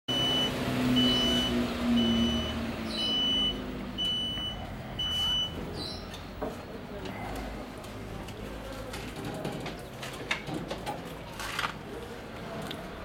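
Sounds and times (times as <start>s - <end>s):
high-pitched reversing beeps: 0.1s - 5.6s.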